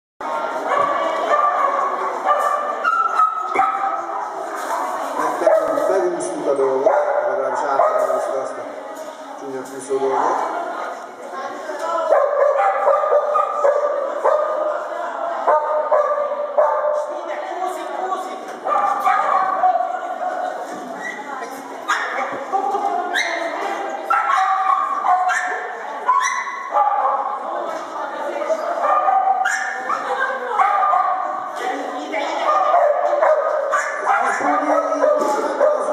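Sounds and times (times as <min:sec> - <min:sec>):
people's voices: 0:00.2 - 0:35.9
dog barking and yipping: 0:18.7 - 0:19.6, 0:24.1 - 0:27.2, 0:28.8 - 0:31.2, 0:32.5 - 0:35.9.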